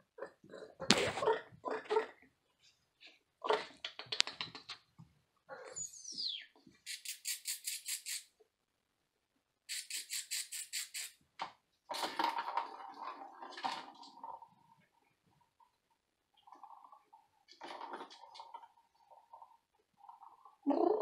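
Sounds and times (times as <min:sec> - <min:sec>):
ball rattling in plastic track: 0:11.9 - 0:14.8, 0:16.4 - 0:20.6.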